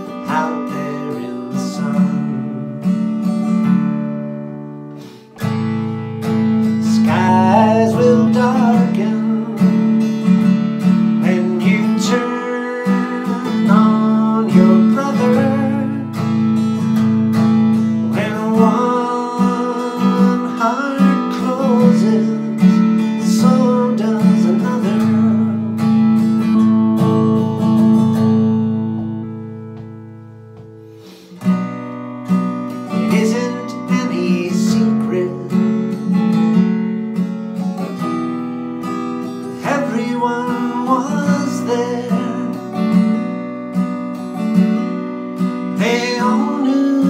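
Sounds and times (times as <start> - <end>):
acoustic guitar strumming: 0.0 - 47.0.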